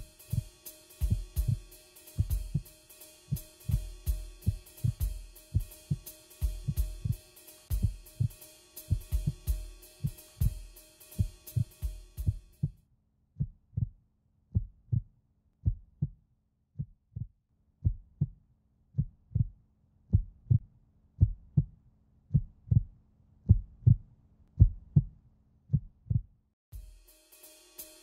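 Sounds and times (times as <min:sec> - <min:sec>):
heartbeat thuds: 0:13.4 - 0:13.9, 0:19.0 - 0:19.5, 0:20.1 - 0:20.6, 0:21.2 - 0:21.7, 0:22.3 - 0:22.9, 0:23.5 - 0:24.0, 0:24.6 - 0:25.1, 0:25.7 - 0:26.3.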